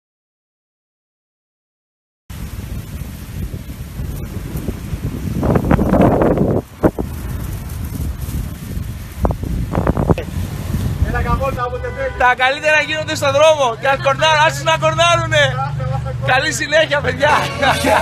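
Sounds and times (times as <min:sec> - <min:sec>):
wind buffeting microphone: 0:02.3 - 0:11.7.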